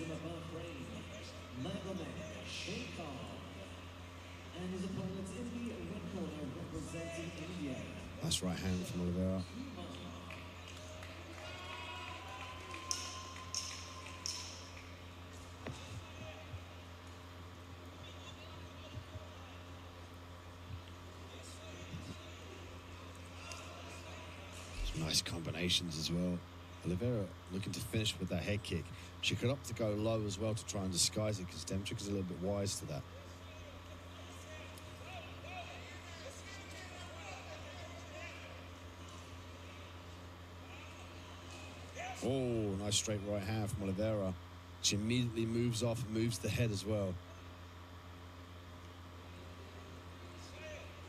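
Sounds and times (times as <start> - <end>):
steady low hum: 0.0 - 51.0.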